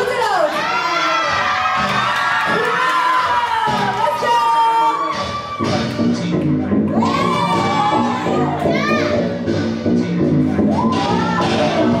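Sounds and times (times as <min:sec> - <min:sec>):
crowd cheering: 0:00.6 - 0:05.9, 0:06.9 - 0:08.7, 0:10.7 - 0:12.0.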